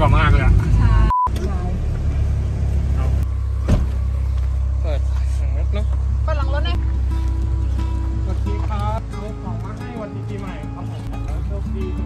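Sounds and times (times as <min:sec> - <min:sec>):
road rumble inside car: 0:00.0 - 0:12.0
short beep: 0:01.1 - 0:01.3.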